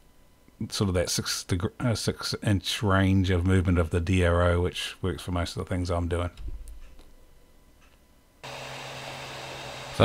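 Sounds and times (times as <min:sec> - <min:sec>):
printer whirring with low hum: 0:08.4 - 0:10.0.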